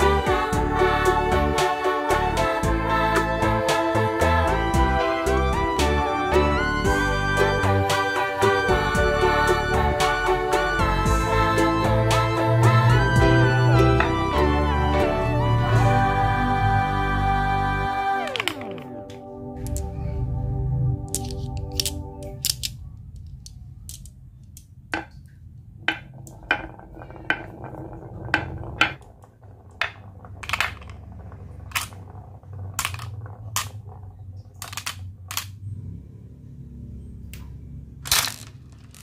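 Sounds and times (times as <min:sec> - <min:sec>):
low steady hum: 0:00.0 - 0:39.0
glass marbles clicking: 0:18.3 - 0:19.0, 0:21.1 - 0:25.3, 0:25.9 - 0:35.5, 0:38.1 - 0:39.0.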